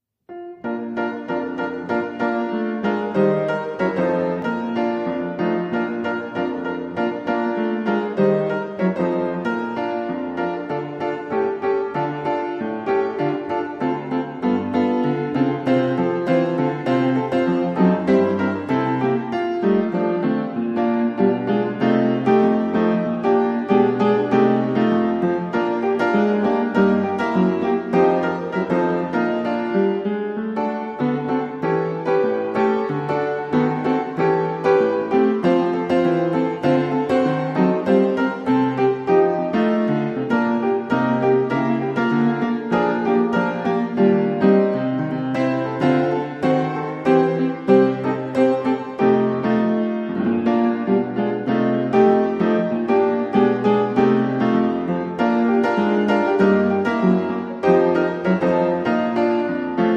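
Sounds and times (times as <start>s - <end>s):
piano music: 0.2s - 59.9s.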